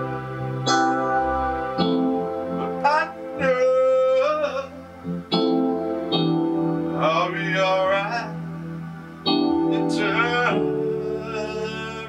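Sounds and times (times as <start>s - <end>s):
piano and strings chords: 0.0s - 12.0s
man singing: 2.8s - 4.8s, 7.0s - 8.4s, 9.7s - 12.0s.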